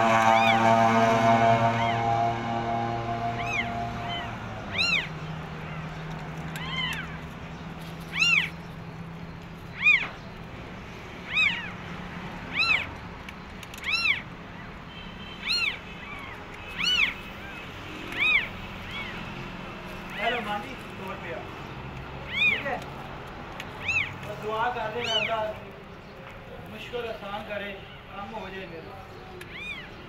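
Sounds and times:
kittens mewing: 3.3 - 8.6, 9.6 - 10.2, 11.2 - 13.0, 13.6 - 14.8, 15.4 - 20.4, 22.1 - 23.0, 23.6 - 24.3, 25.0 - 25.3, 29.4 - 30.0.

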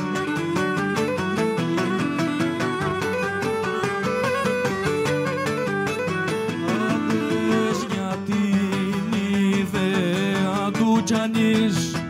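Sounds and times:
bowed lyra melody: 0.0 - 7.9
strummed lutes: 0.0 - 12.0.

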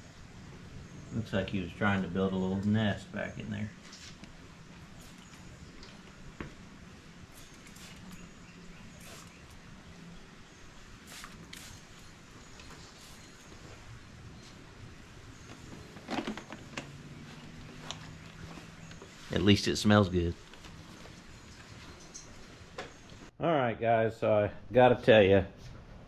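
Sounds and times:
short faint spray bursts: 7.3 - 8.2, 8.9 - 9.5, 11.0 - 12.1.

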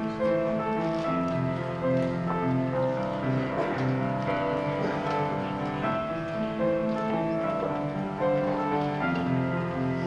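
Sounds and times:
upright piano playing slowly: 0.0 - 10.0.

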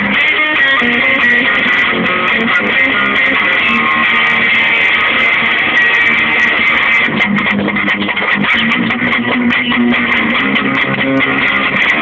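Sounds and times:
distorted electric guitar riff: 0.0 - 12.0.

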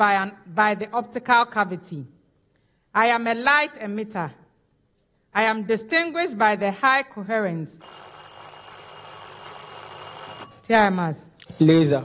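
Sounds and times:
electric quiz bell ringing: 7.8 - 10.7.

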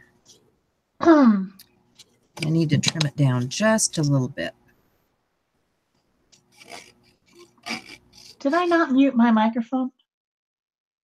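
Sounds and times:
paper cutting strokes: 6.4 - 8.8.

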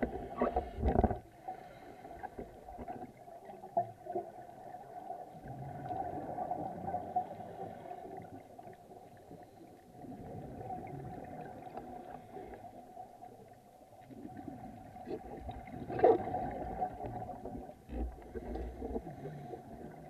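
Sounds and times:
underwater bubbles gurgling: 0.0 - 20.0.

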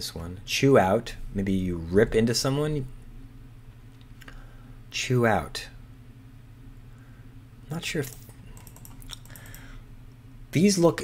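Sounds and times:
computer keyboard typing: 8.0 - 9.7.

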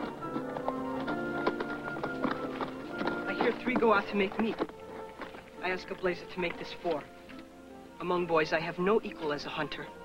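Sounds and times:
horse hooves clip-clopping: 0.0 - 7.5
orchestral film music: 0.0 - 10.0.

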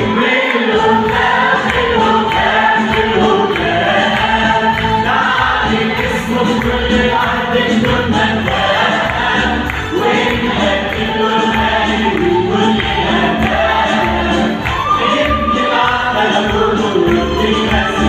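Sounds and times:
mixed choir singing a hymn: 0.0 - 18.0.

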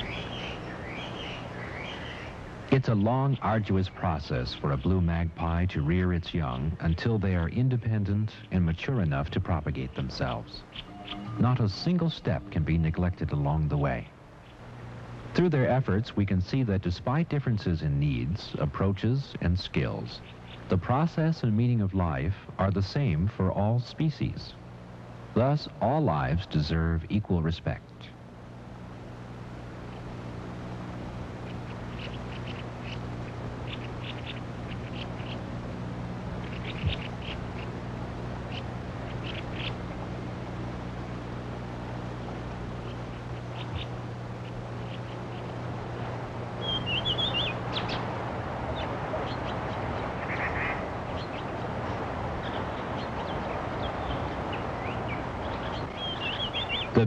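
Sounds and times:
birds calling: 0.0 - 57.0
low hum: 0.0 - 57.0
steady hiss: 0.0 - 57.0.

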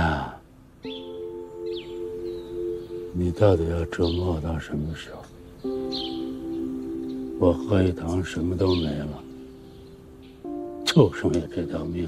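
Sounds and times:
held orchestral chord: 0.8 - 12.0.

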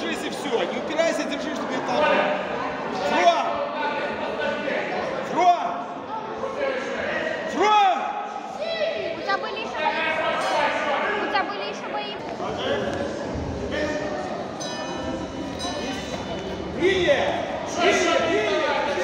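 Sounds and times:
voices shouting in a gym hall: 0.0 - 19.0.

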